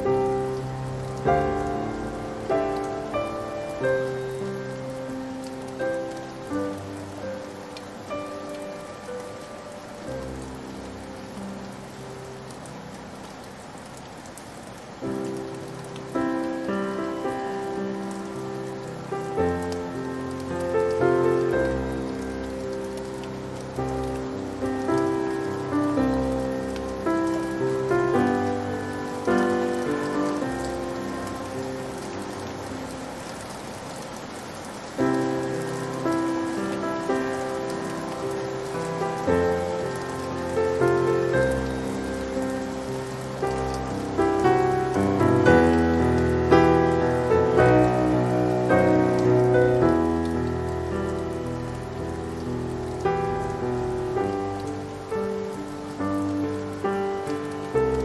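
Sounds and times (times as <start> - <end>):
rain pattering: 0.0 - 58.0
slow sad solo piano melody: 0.0 - 58.0.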